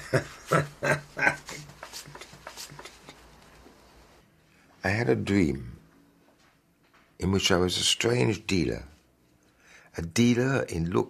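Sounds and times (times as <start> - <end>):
man laughing: 0.0 - 3.3.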